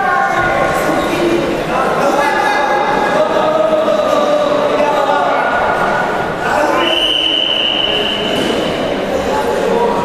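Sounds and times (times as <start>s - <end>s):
referee's whistle blast: 6.8s - 8.6s.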